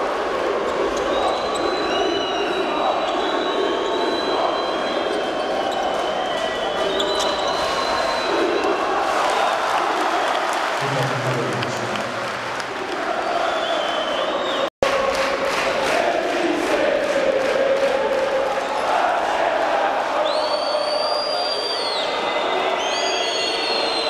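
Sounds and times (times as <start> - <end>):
arena crowd noise: 0.0 - 24.0
fans cheering: 0.0 - 24.0.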